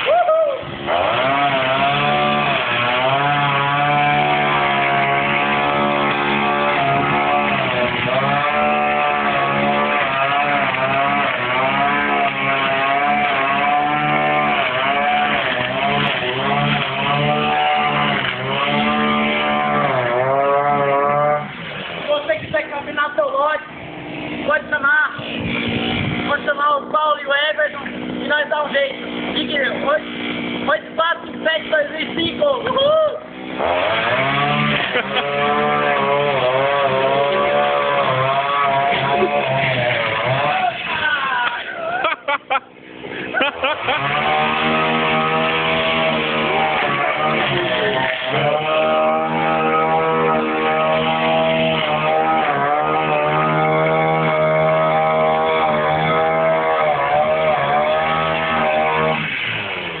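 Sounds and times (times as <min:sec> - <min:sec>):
string trimmer engine at high revs: 0:00.0 - 1:00.0.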